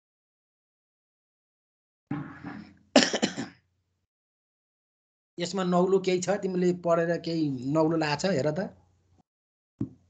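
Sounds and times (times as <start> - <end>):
person clearing throat: 3.0 - 3.6.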